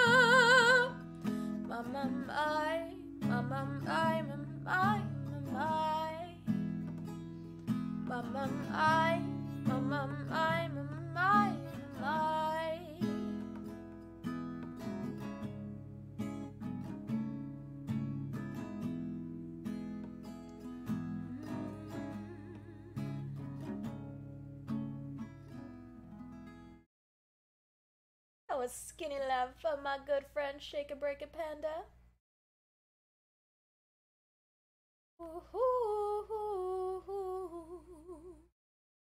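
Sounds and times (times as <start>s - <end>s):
acoustic guitar strumming: 0.0s - 26.8s
wordless vocal melody: 21.1s - 23.4s.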